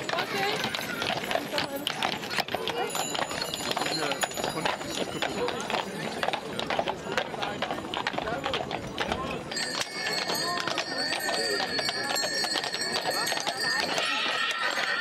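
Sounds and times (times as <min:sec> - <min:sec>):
crowd voices: 0:00.0 - 0:15.0
hooves clopping on cobblestones: 0:00.0 - 0:15.0.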